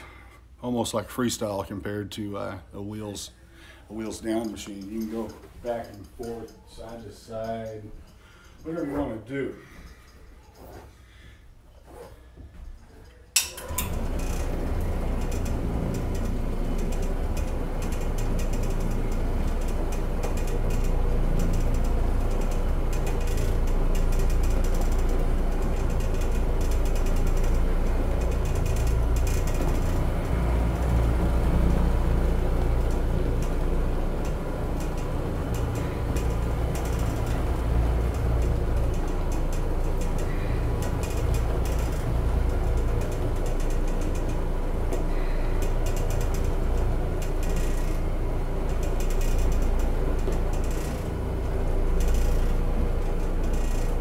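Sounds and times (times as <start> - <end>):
floor machine running: 13.4 - 54.0.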